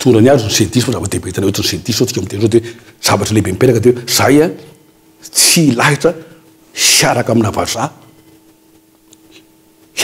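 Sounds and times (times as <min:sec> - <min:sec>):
man speaking: 0:00.0 - 0:08.1.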